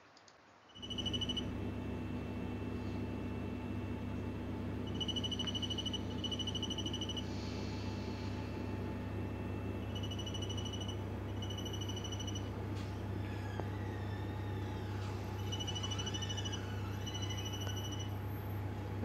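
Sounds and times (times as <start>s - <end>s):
low electrical hum: 0.0s - 19.0s
high pulsing electronic beeps: 0.8s - 1.5s, 4.8s - 7.3s, 9.6s - 12.5s, 15.4s - 18.2s.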